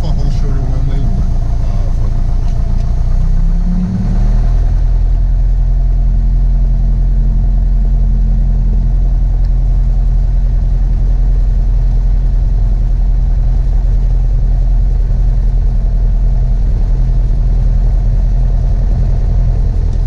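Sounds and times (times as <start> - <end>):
propeller plane engine running: 0.0 - 20.0.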